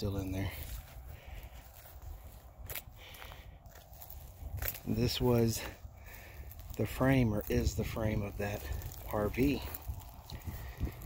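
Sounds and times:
footsteps on grass: 0.0 - 11.0.

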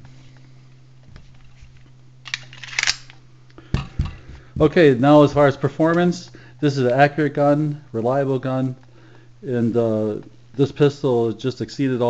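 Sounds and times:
low steady hum: 0.0 - 12.0
pistol clicks and scrapes: 2.2 - 3.2.

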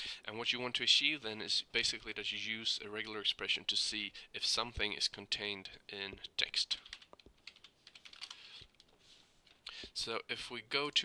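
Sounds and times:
keyboard typing: 6.7 - 8.9.

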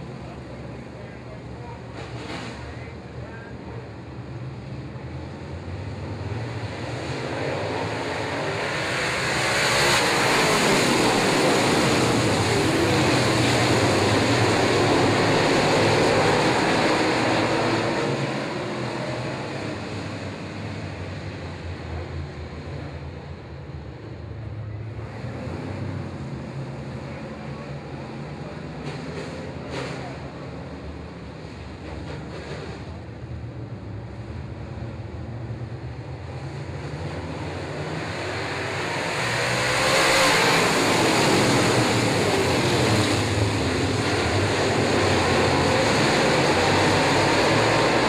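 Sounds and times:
race car engines droning: 0.0 - 48.0.

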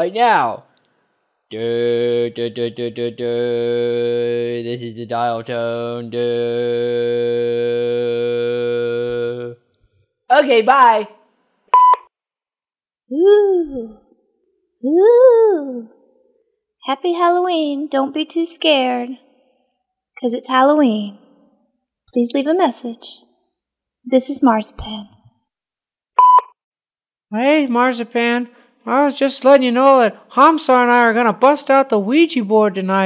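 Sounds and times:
answering machine beep: 11.8 - 12.0, 26.2 - 26.5.

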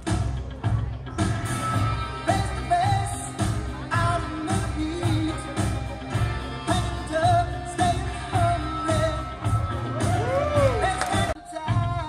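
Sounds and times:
pop song with singing: 0.0 - 12.0.

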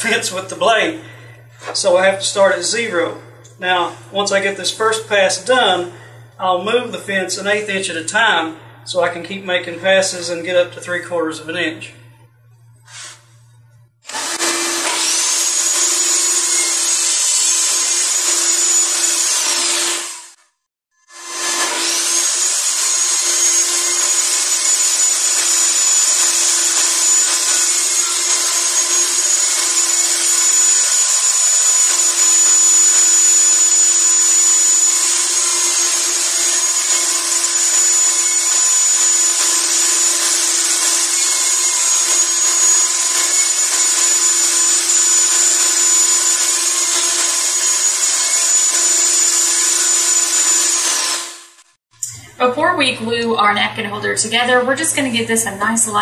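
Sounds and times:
table saw whining: 12.4 - 52.4.

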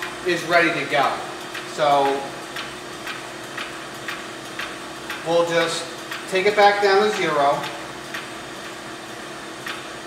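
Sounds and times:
pump humming: 0.0 - 10.0
pump ticks: 0.0 - 10.0.

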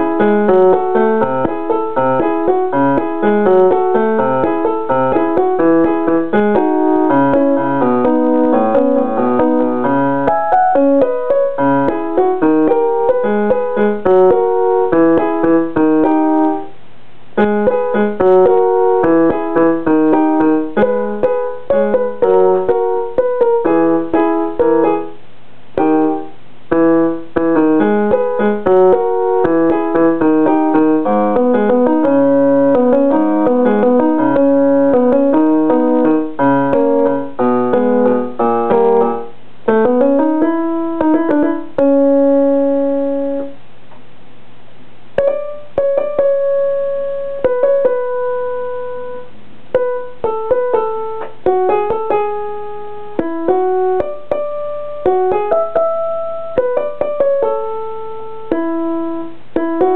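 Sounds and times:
electronic keyboard piano notes: 0.0 - 16.8, 17.4 - 43.6, 45.2 - 59.9.

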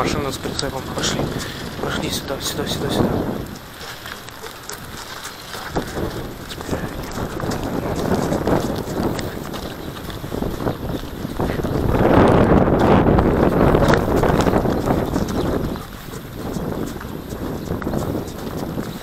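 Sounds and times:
footsteps on snow: 0.0 - 19.0
wind noise on microphone: 0.0 - 19.0.

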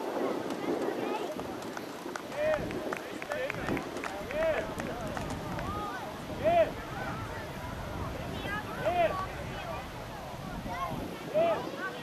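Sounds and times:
scattered claps: 0.3 - 5.9.

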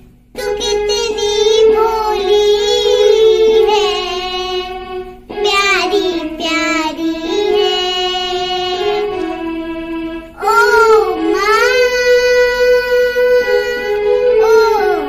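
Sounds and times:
girl singing: 0.4 - 15.0.

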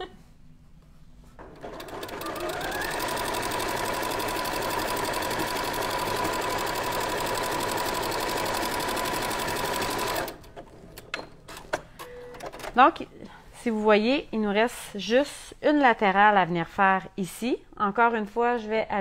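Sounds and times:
sewing machine stitching: 1.4 - 11.1.

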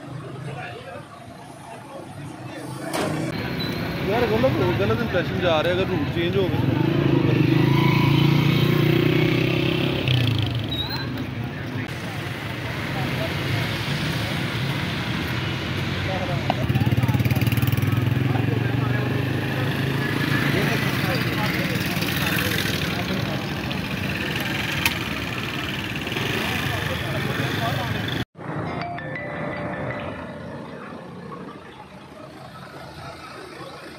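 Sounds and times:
many voices talking: 0.0 - 7.7, 9.4 - 33.9
vehicle engines humming: 0.0 - 33.9.

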